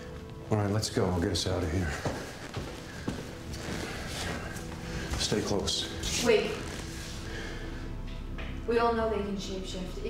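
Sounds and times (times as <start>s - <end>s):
faint background music: 0.0s - 10.0s
footsteps on hard floor: 1.6s - 7.2s.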